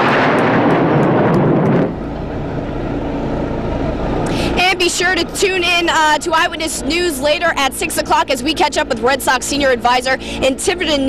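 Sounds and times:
jets roaring overhead: 0.0 - 11.0
low rumble: 0.0 - 11.0.

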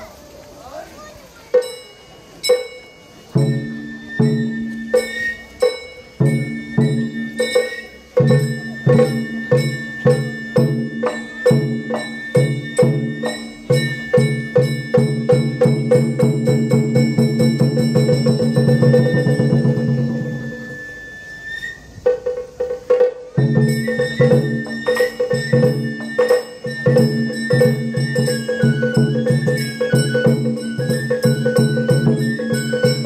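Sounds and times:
bamboo flute melody: 0.0 - 33.0
hand gong: 1.6 - 20.9
rapid taiko drumming: 2.4 - 20.8, 22.0 - 33.0.

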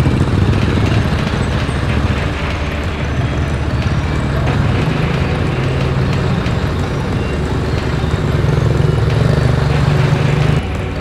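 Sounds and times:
low engine rumble of traffic: 0.0 - 11.0.

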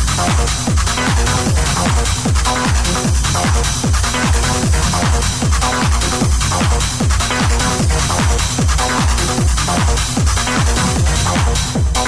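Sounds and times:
four-on-the-floor kick drum: 0.0 - 12.0
techno music: 0.0 - 12.0.

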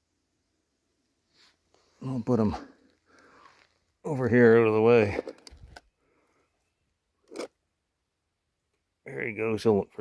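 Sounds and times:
soft rustle: 1.2 - 4.0.

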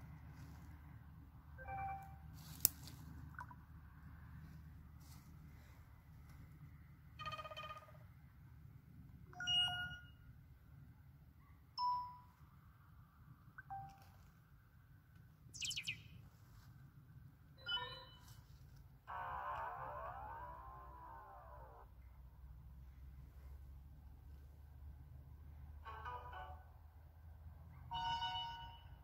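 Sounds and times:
phone notification chimes and beeps: 9.4 - 10.2
high chirping tone: 15.6 - 16.2.

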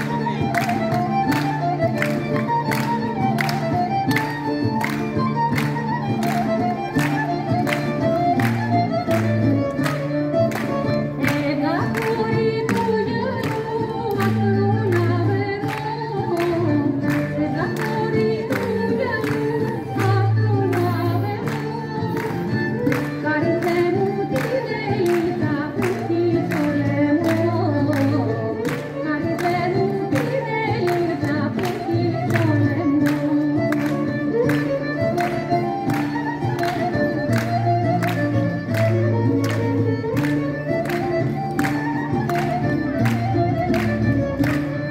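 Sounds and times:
folk dance song with singing: 0.0 - 44.9.

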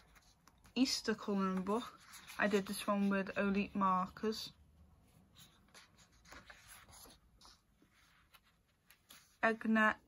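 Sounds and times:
paper page turning: 5.4 - 9.4.

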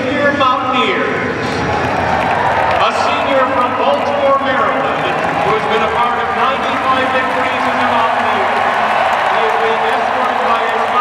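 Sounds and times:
crowd noise: 0.0 - 11.0
announcer over loudspeaker: 2.8 - 8.6, 9.3 - 11.0.

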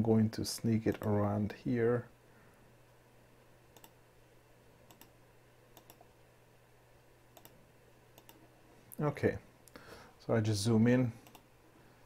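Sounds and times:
faint low hum: 0.0 - 12.0
computer mouse clicks: 0.9 - 1.2, 3.8 - 4.0, 4.9 - 5.2, 5.8 - 6.1, 7.3 - 7.6, 8.2 - 8.5, 11.2 - 11.5.

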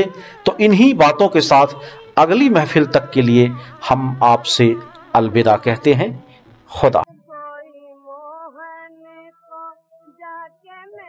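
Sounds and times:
woman singing in high voice: 7.1 - 11.0.

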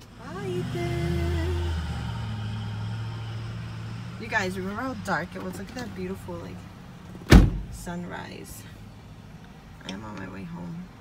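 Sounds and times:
car engine droning: 0.0 - 11.0.

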